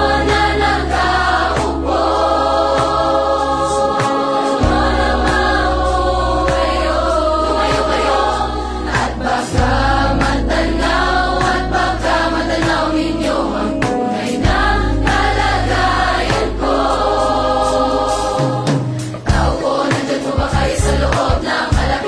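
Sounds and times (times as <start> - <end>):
large choir singing: 0.0 - 22.0
low bass notes: 4.6 - 19.6, 20.4 - 22.0.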